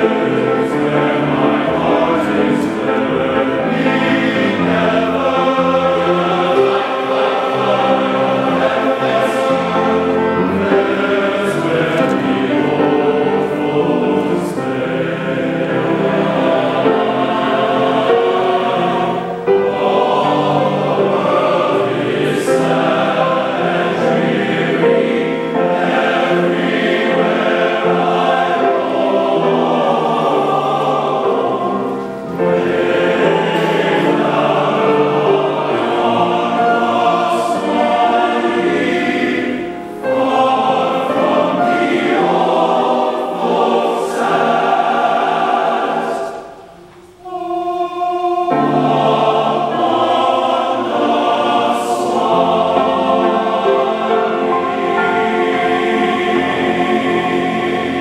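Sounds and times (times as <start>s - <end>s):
men's choir singing in harmony: 0.0s - 58.0s.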